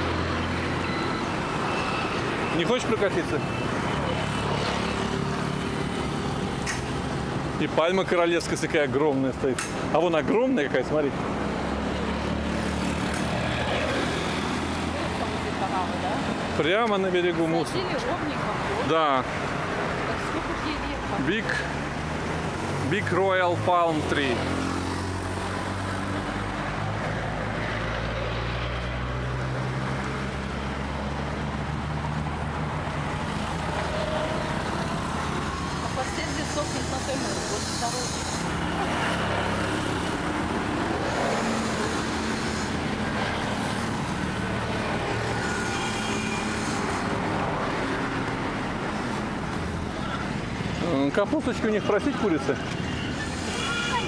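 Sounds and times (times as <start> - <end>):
passing cars and motorcycles: 0.0 - 54.0.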